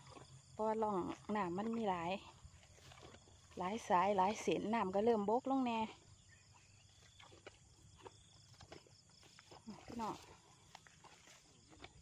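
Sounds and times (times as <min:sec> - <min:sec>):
footsteps through tall grass: 0:02.5 - 0:04.2, 0:06.5 - 0:12.0.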